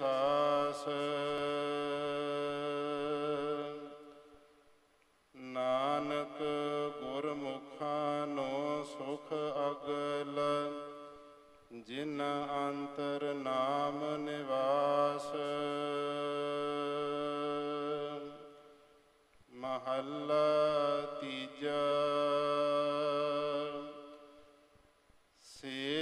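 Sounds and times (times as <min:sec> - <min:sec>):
person chanting: 0:00.0 - 0:04.6, 0:05.3 - 0:18.9, 0:19.5 - 0:24.7, 0:25.4 - 0:26.0.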